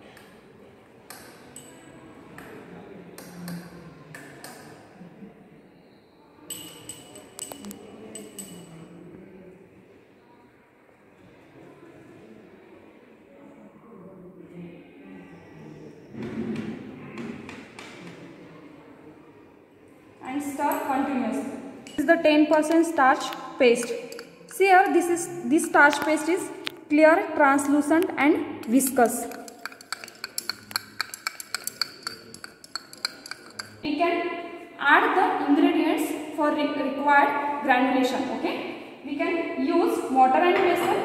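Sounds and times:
faint room noise: 0.0 - 41.0
glass rod stirring in beaker: 6.5 - 8.7, 21.8 - 26.4, 28.6 - 33.9
rod tapping glass: 23.8 - 24.6, 28.6 - 33.8.

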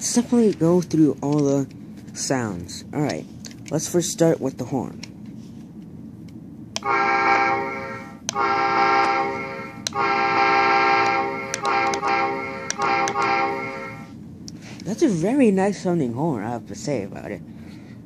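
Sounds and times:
model train horn blasts: 6.8 - 14.1.

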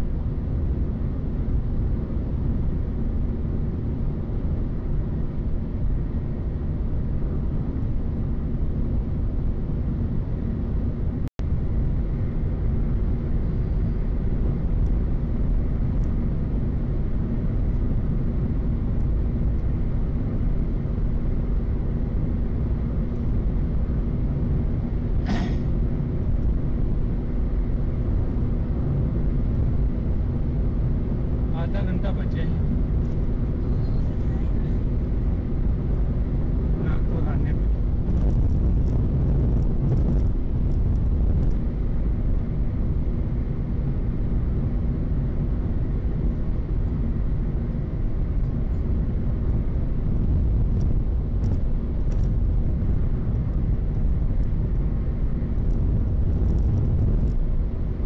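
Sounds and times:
car cabin road and engine noise: 0.0 - 58.0.

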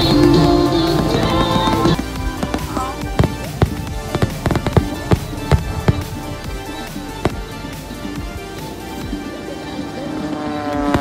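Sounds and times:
fireworks bursting with bangs: 0.0 - 11.0
music playing: 0.0 - 11.0.

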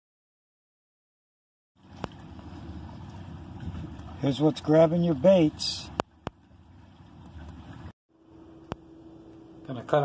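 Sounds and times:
wind buffeting microphone: 1.9 - 4.7.

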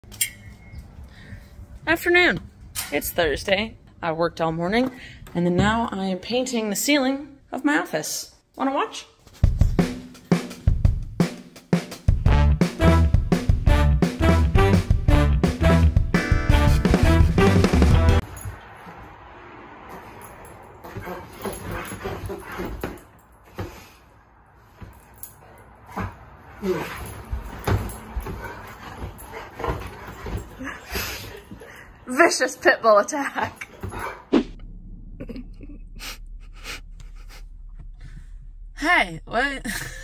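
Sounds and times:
drum kit steady beat: 9.4 - 18.2.

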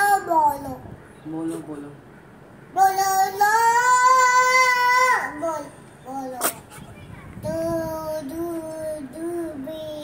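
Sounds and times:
toddler singing long notes: 2.8 - 6.4.

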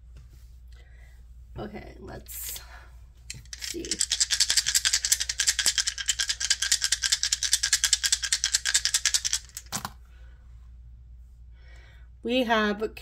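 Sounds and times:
dice clattering on cards: 3.3 - 10.0
dice rattling in hands: 3.3 - 10.0.

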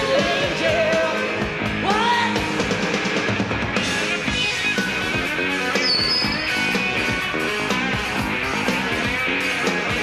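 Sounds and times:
distorted electric guitars: 0.0 - 10.0
driving drum kit: 0.0 - 10.0.

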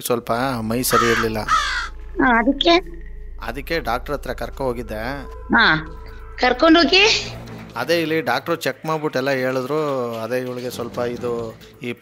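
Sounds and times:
harsh rasping cry: 0.7 - 2.1.

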